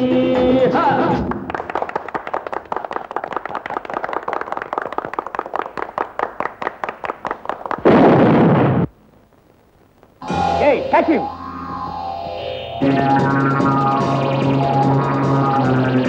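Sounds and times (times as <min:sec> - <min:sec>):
loud rushing smoke-bomb blast: 0:07.8 - 0:08.9.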